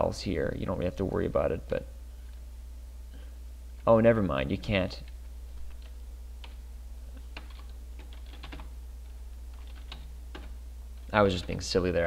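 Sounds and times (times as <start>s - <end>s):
steady low hum: 0.0s - 12.0s
computer keyboard typing: 5.0s - 6.6s, 7.2s - 8.8s, 9.5s - 11.6s.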